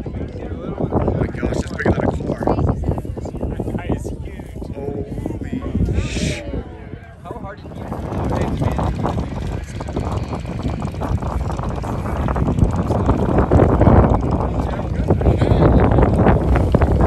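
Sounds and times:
people talking: 0.0s - 17.0s
motorcycle engines idling: 7.4s - 17.0s.

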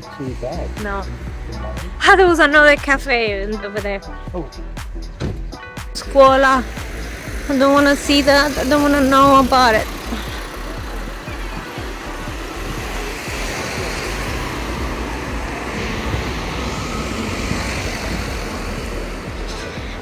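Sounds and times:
cars driving past: 6.0s - 20.0s.

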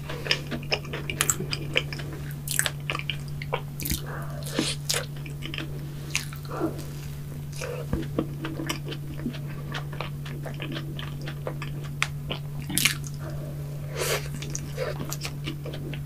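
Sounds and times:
person chewing: 0.0s - 16.0s.

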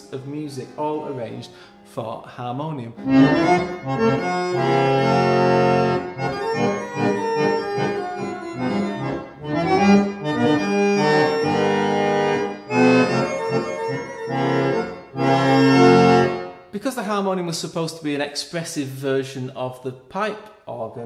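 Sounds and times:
harmonium chords: 0.0s - 16.7s.

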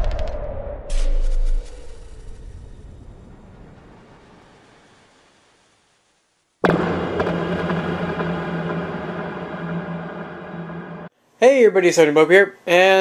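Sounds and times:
deep rumble: 0.0s - 4.8s, 6.6s - 11.1s
loud hit ringing into drone: 6.6s - 11.1s.

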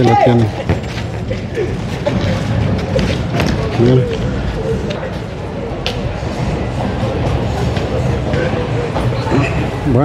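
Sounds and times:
steady low rumble: 0.9s - 10.0s.

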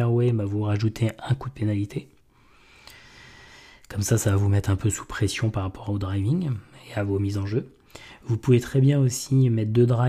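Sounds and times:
man inhaling into microphone: 2.4s - 3.9s, 7.8s - 8.3s.

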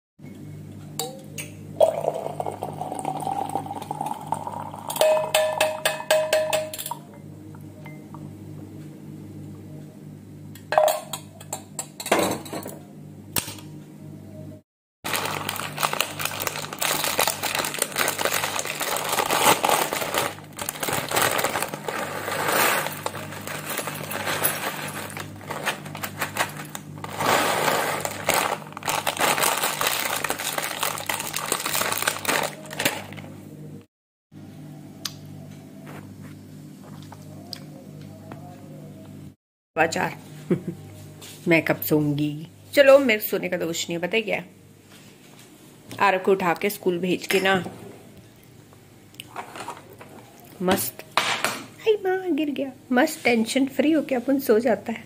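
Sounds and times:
tea pouring through strainer: 1.8s - 5.0s
plastic packet crinkling: 15.1s - 33.2s.

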